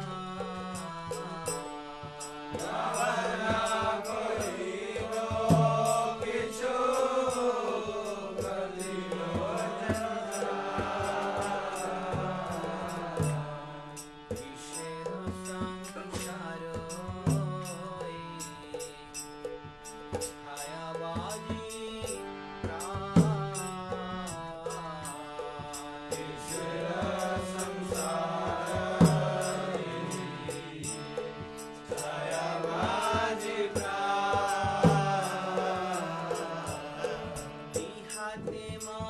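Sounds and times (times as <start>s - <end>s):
sustained accompanying tones: 0.0s - 20.6s, 22.7s - 38.7s
man singing devotional chant: 0.0s - 39.0s
percussion beat: 0.0s - 39.0s.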